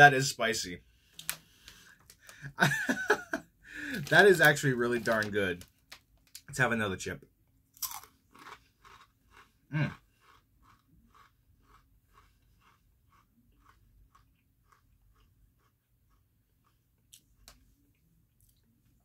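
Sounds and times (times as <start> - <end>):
person chewing crunchy chip: 7.7 - 17.2.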